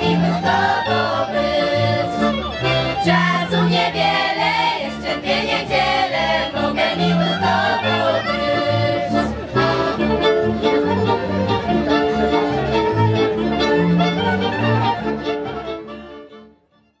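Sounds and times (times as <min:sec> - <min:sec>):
voices singing folk song: 0:00.0 - 0:10.2
accordion: 0:00.0 - 0:17.0.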